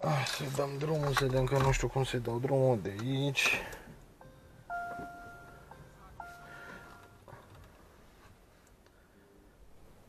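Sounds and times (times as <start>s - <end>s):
dashboard chime tones: 4.2s - 7.4s.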